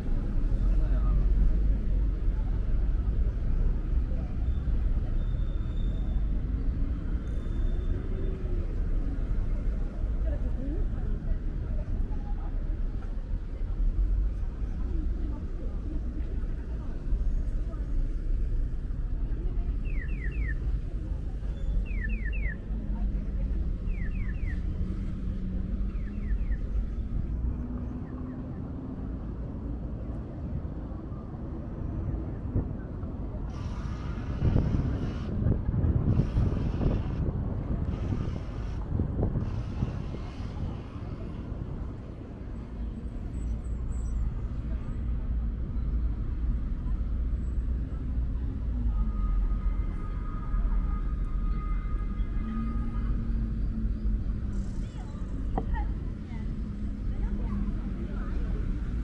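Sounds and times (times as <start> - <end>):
traffic rumble: 0.0 - 59.0
rushing noise: 33.4 - 42.0.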